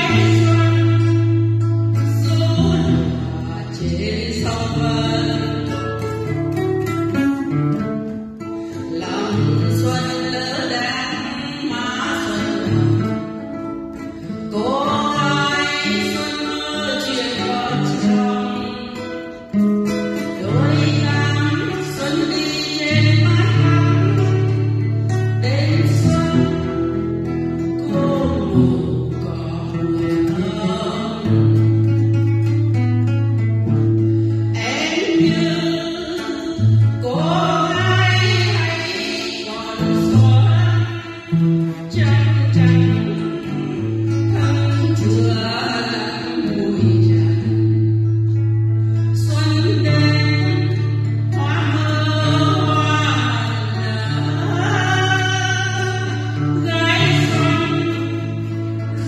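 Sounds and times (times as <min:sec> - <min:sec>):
person singing slow song: 0:00.0 - 0:07.2, 0:07.8 - 0:32.0, 0:33.9 - 0:59.0
guitar: 0:00.0 - 0:59.0
plucked strings: 0:00.0 - 0:59.0.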